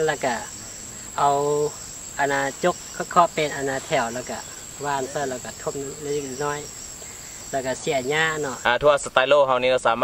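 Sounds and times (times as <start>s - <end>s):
man speaking: 0.0s - 6.8s, 7.5s - 10.0s
high-pitched insect buzz: 0.0s - 8.7s.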